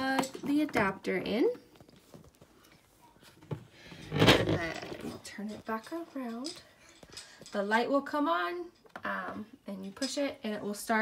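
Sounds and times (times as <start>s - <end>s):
faint handling noise: 1.6s - 7.9s.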